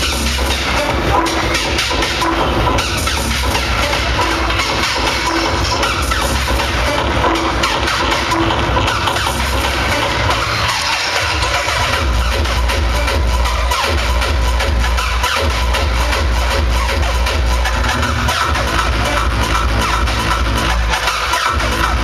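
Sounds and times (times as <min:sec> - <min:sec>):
hardcore techno music: 0:00.0 - 0:22.0.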